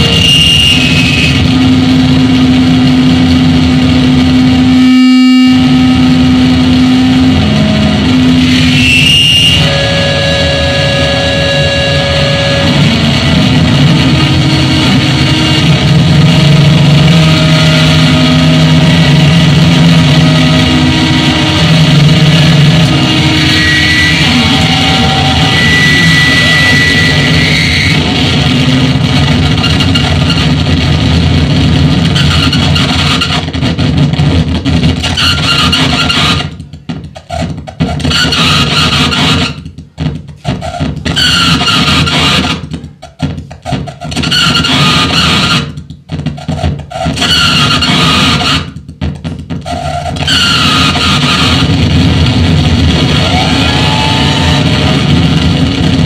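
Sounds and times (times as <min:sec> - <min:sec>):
droning tones shifting pitch: 0:00.0 - 0:33.2, 0:50.4 - 0:56.0
harsh noise music: 0:00.0 - 0:56.0.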